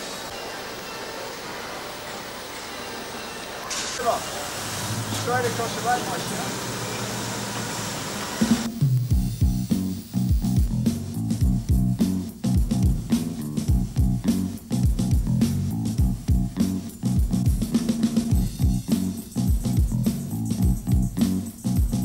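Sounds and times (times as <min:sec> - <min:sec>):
steady drum beat: 0:08.4 - 0:22.0
bass guitar line: 0:08.7 - 0:22.0.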